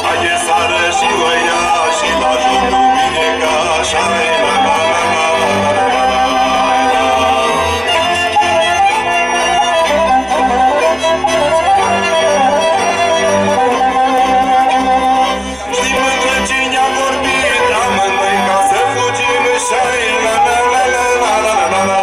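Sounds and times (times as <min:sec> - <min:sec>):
live folk band playing: 0:00.0 - 0:22.0.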